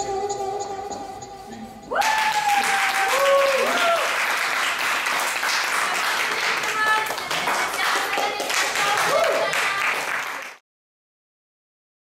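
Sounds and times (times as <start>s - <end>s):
group of people clapping: 2.0s - 10.6s.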